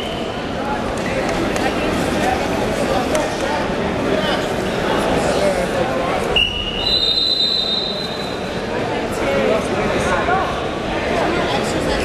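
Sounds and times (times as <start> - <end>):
referee's whistle long note: 6.4 - 8.2.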